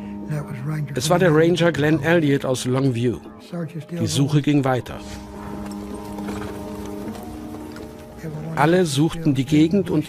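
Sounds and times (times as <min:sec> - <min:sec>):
sustained low music chord: 0:00.0 - 0:10.0.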